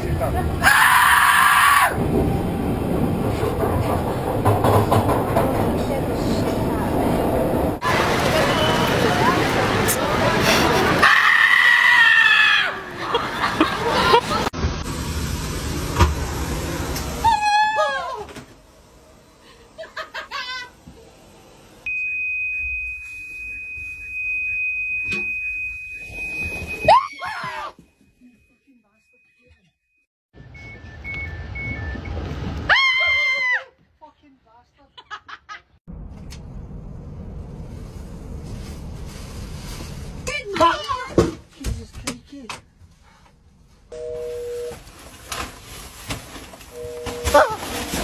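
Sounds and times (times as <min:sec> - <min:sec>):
two-tone electronic beep: 0:21.9 - 0:26.9, 0:30.4 - 0:32.3.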